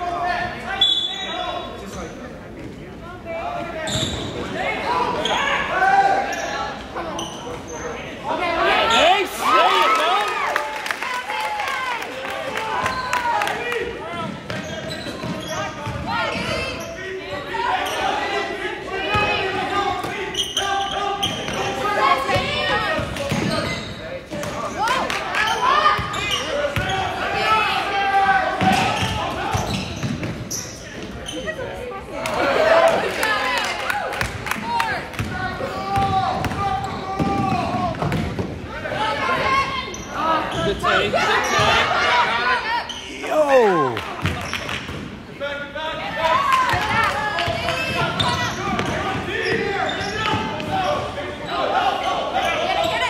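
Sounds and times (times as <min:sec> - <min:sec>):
people shouting: 0:41.3 - 0:44.0.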